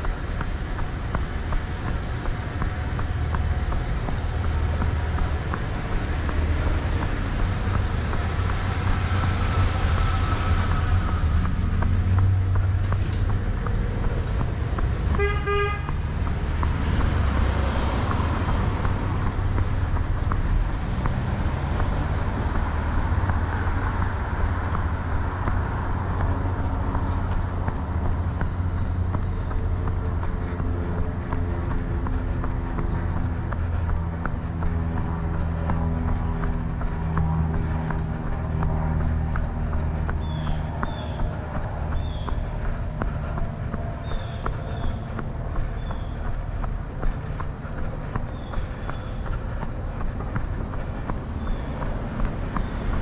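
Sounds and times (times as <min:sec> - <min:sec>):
road traffic noise: 0:00.0 - 0:53.0
vehicles passing close by: 0:00.0 - 0:53.0
vehicle horn toot: 0:15.2 - 0:15.9.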